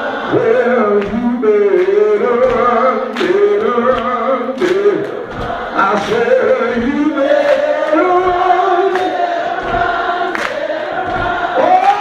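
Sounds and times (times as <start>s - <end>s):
choir and congregation singing: 0.0s - 12.0s.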